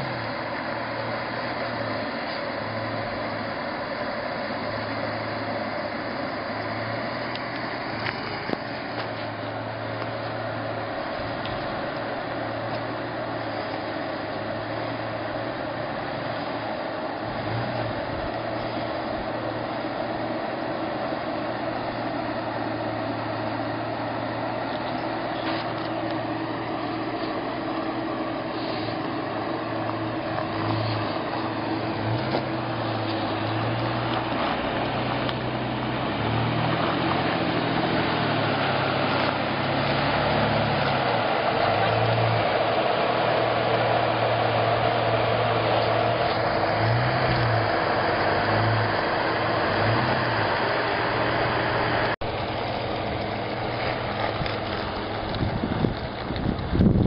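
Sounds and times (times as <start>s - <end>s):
off-road vehicle engine revving: 0.0s - 57.0s.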